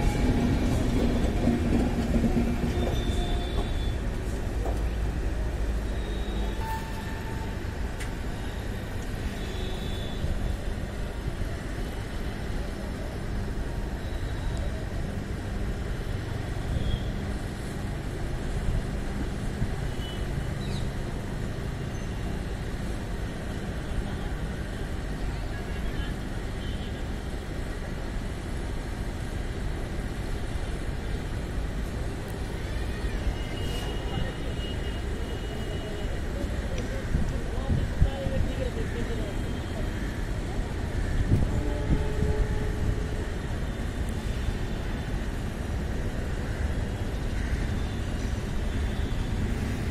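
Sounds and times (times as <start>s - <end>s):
train wheels rumbling on rails: 0.0s - 9.4s.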